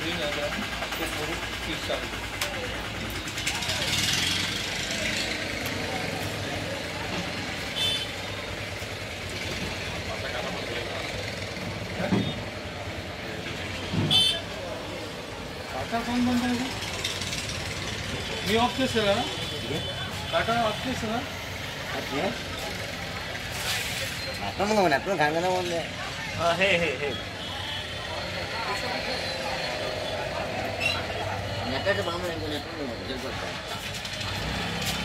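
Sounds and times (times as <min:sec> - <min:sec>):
people talking: 0:00.0 - 0:17.2, 0:17.8 - 0:35.0
steady engine noise: 0:00.0 - 0:35.0.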